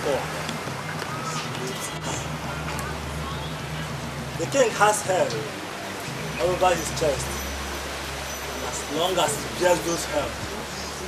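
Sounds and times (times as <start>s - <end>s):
man's voice: 4.4s - 5.5s, 6.4s - 7.4s, 8.7s - 10.6s.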